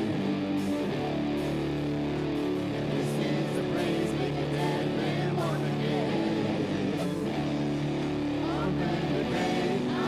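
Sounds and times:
worship band playing: 0.0s - 10.0s.

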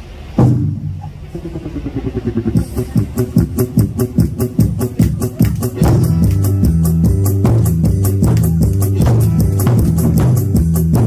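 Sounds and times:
backing music over speakers: 0.4s - 11.0s
low pulsing beat: 0.4s - 11.0s.

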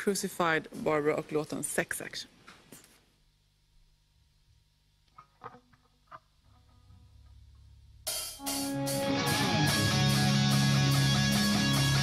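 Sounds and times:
live heavy metal band: 8.4s - 12.0s.

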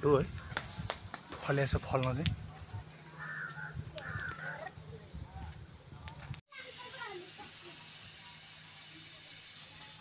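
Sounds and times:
loud steady hiss: 6.5s - 10.0s.

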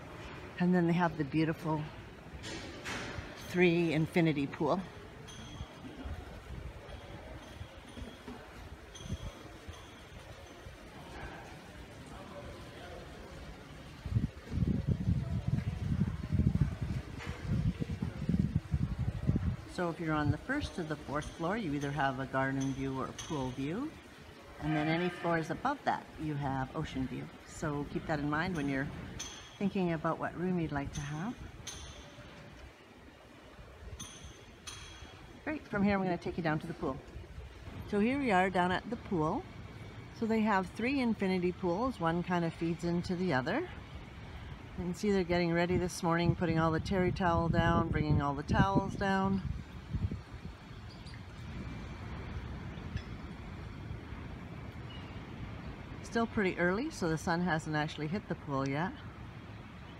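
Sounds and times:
light ringing clinks: 5.0s - 11.5s, 28.5s - 30.0s, 30.9s - 32.6s, 33.9s - 35.8s, 50.7s - 51.6s.

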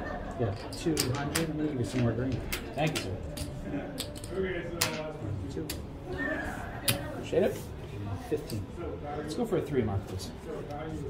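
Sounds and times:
casino chips clacking: 0.4s - 5.1s.

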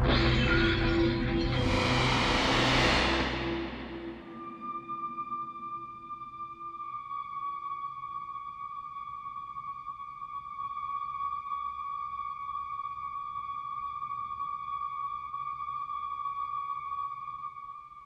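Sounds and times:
faint low drone: 0.0s - 6.3s.

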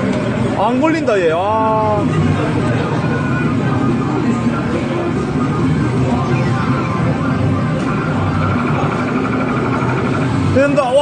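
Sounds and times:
game machines noise: 0.0s - 11.0s
pulsing electronic tones: 3.0s - 10.6s.

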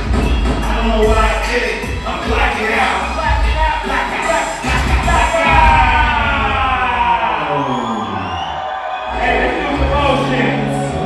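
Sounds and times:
crowd noise: 0.0s - 11.0s
live hip hop music: 0.0s - 11.0s.

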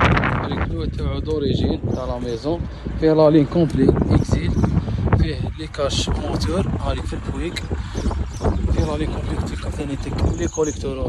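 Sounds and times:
low rumble: 0.0s - 11.0s
man talking: 0.0s - 11.0s.

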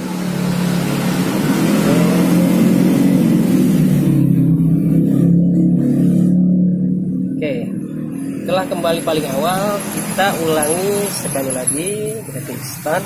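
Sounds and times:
vehicle engine running: 0.0s - 13.0s.

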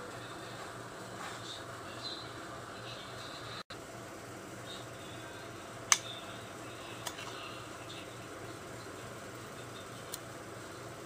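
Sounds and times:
low room hum: 0.0s - 11.0s
sharp clicks: 5.9s - 6.1s.

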